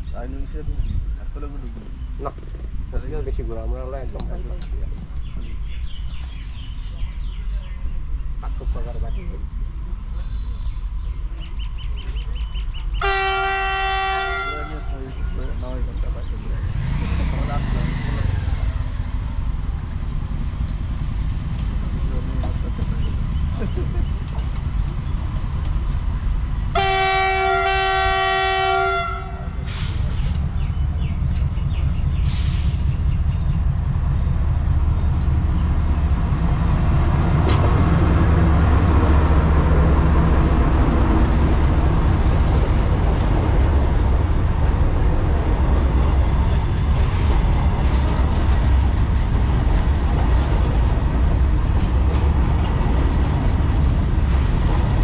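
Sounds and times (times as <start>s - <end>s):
train rumbling on rails: 0.0s - 55.0s
locomotive horn blasts: 13.0s - 15.0s, 26.8s - 29.6s.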